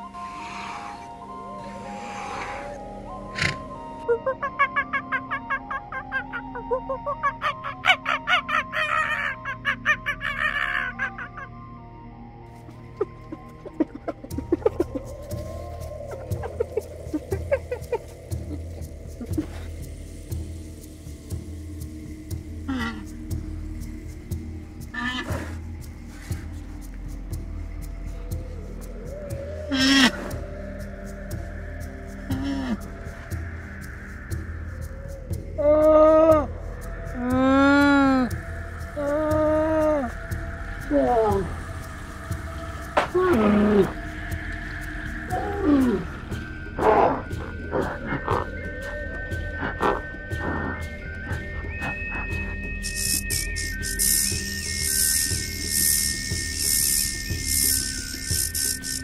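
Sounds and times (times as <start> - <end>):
partridge calling: 4.3 - 11.5, 52.8 - 59.0.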